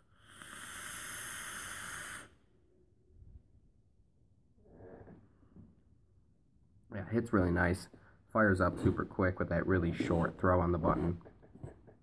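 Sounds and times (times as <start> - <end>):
hiss of air through atomizer: 0.0 - 2.5
breathy exhale: 0.0 - 2.6.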